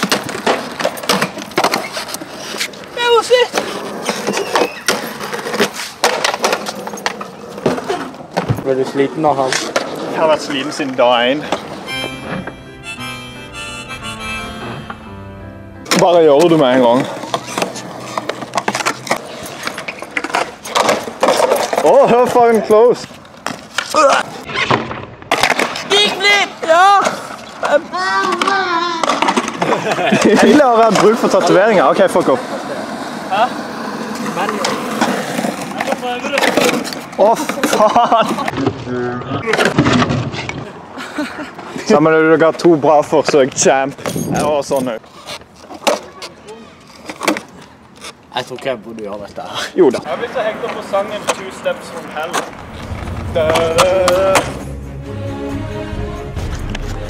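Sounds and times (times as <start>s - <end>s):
skateboard clattering on ground: 0.0s - 11.8s, 15.9s - 32.1s, 33.9s - 40.8s, 42.5s - 49.2s, 49.8s - 54.6s
skateboard clicks and knocks: 0.0s - 12.6s, 15.9s - 40.8s, 42.5s - 54.6s
skateboard wheels rolling on concrete: 0.0s - 57.0s.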